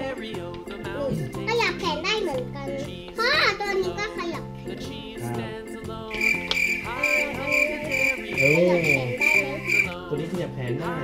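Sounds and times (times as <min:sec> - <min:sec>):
cricket chirping: 0:06.1 - 0:10.0.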